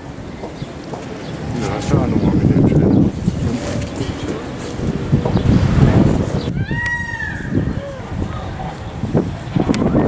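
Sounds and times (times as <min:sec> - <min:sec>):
wind buffeting microphone: 0:00.0 - 0:10.0
faint voices: 0:00.4 - 0:10.0.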